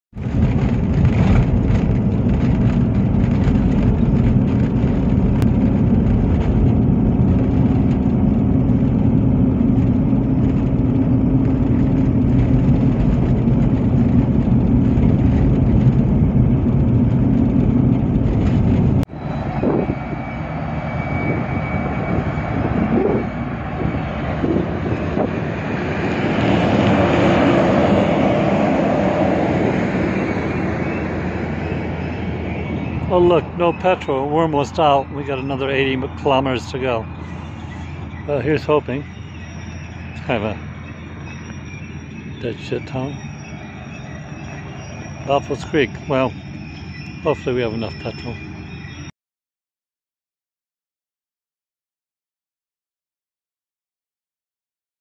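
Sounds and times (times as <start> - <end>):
tyres and engine rumble: 0.0 - 49.1
freight train rolling past: 0.2 - 49.1.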